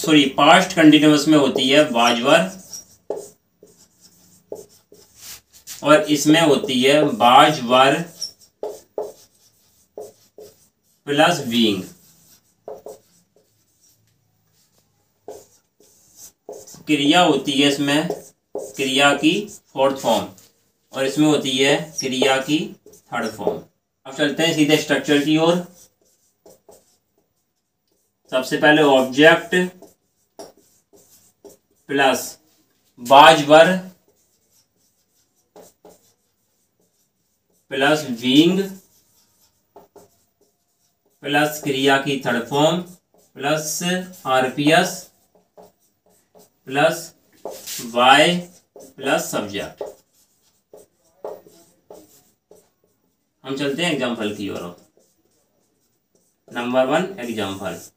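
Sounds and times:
marker scratching on whiteboard: 0.0 - 57.9.

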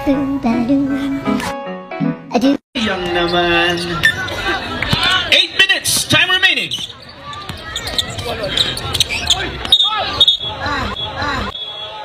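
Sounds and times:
basketball bouncing on court: 4.8 - 5.2, 5.8 - 10.3
people shouting: 9.3 - 12.0.

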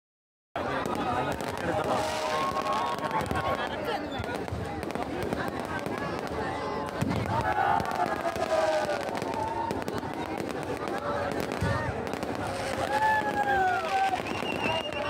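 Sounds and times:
crowd voices: 0.6 - 15.0
fireworks crackling and popping: 0.6 - 15.0.

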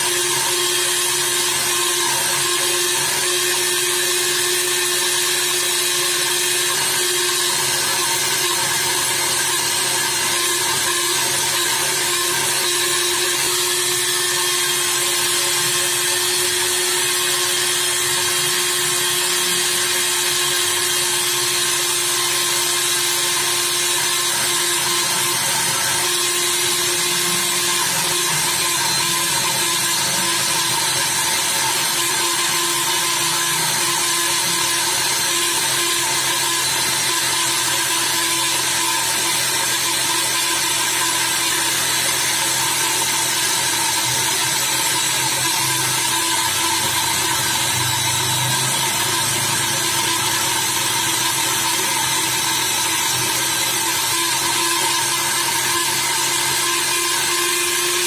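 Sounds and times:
rotary buffer grinding rubber: 0.0 - 58.0.

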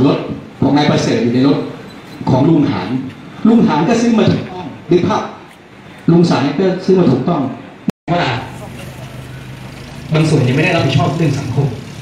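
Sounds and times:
man speaking: 0.0 - 5.4, 10.0 - 11.9.

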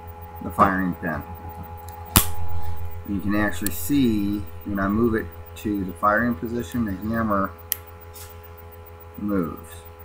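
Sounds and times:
steady low hum: 0.0 - 10.0
pistol action metallic click: 2.1 - 2.4.

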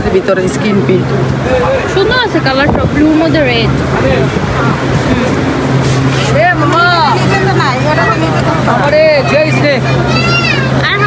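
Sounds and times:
voices in a market: 0.0 - 11.0.

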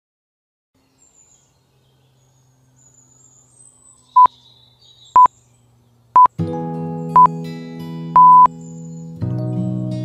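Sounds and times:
faint high chirps: 3.9 - 5.4, 8.2 - 8.8
electronic timer beep: 8.2 - 8.5.

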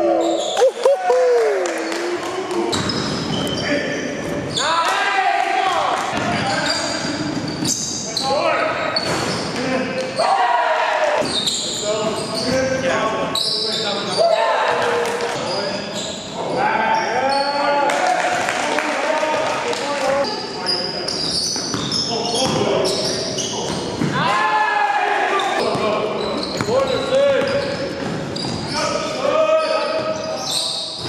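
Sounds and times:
players' voices echoing: 0.0 - 31.0.

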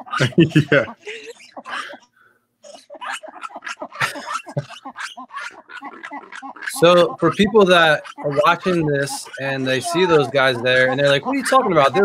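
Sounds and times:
lemurs giving harsh calls: 0.0 - 12.0.

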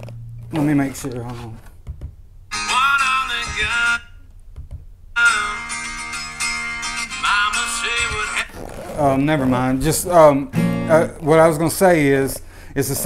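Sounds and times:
acoustic guitar chords strummed: 2.5 - 4.1, 5.2 - 8.6, 9.2 - 11.2.

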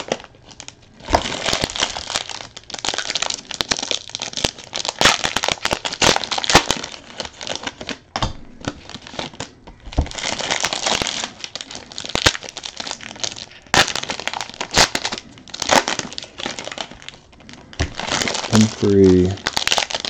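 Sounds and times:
plastic packaging crinkling and tearing: 0.0 - 20.0.

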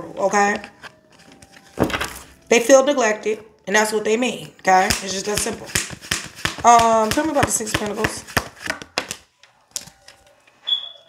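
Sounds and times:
cards being handled: 0.2 - 2.4, 4.8 - 10.4
card snap: 4.8 - 9.2.

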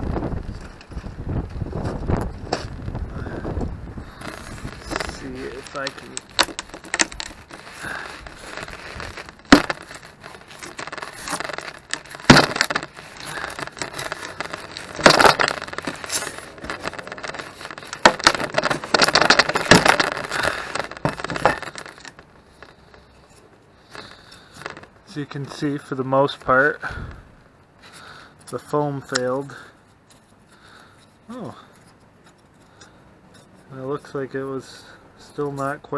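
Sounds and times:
foam cracking and tearing: 4.0 - 27.0
pry bar scraping wood: 4.1 - 24.9.

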